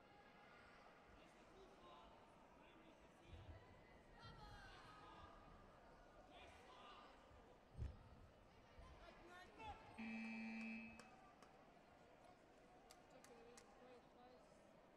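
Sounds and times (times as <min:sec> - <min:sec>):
faint voices in a hall: 0:00.0 - 0:14.9
electronic buzzer tone: 0:10.0 - 0:11.0.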